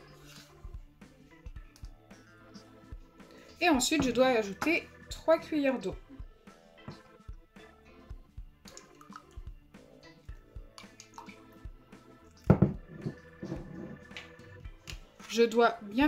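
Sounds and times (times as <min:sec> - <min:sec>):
background music: 0:00.0 - 0:16.0
water dripping and splashing: 0:08.6 - 0:09.6, 0:10.6 - 0:11.7.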